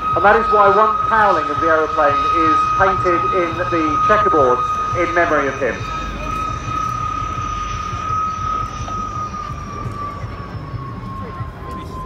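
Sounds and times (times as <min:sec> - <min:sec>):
jet flying past: 0:00.0 - 0:12.0.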